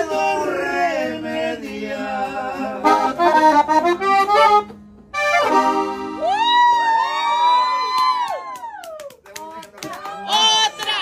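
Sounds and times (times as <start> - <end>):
button accordion chord: 2.8 - 6.2
people cheering and whooping: 6.2 - 9.2, 9.8 - 11.0
people clapping: 7.6 - 11.0.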